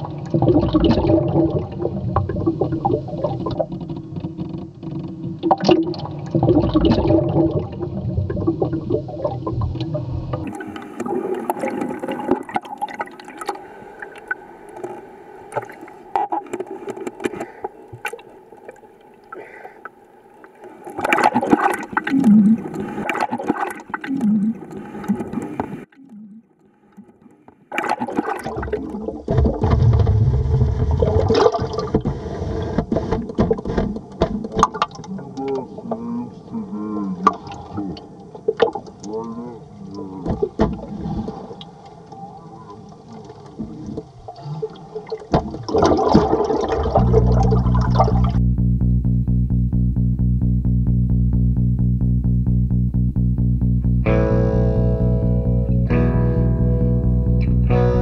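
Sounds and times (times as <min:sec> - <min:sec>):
muffled underwater rumbles: 0:00.0 - 0:18.1, 0:21.0 - 0:26.4, 0:28.4 - 0:41.5, 0:42.7 - 0:58.0.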